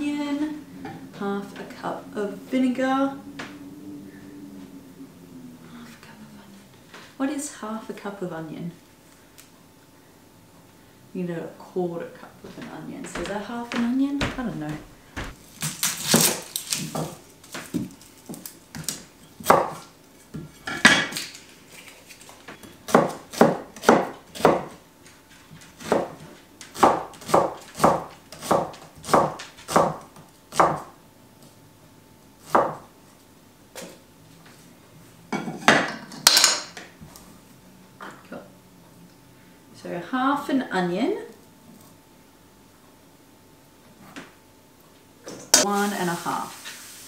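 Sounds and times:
cleaver chopping on wooden block: 22.9s - 24.7s, 26.8s - 30.9s.

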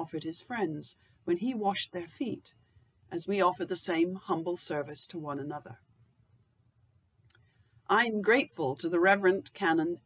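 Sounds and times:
woman speaking: 0.0s - 5.8s, 7.9s - 10.0s.

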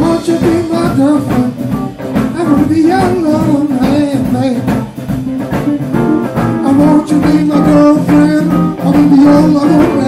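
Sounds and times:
bass: 0.0s - 10.0s
drums: 0.0s - 10.0s
electric guitar lines: 0.0s - 10.0s.

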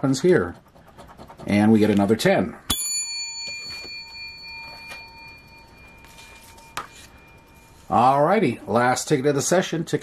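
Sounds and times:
coin ringing: 2.7s - 7.8s.

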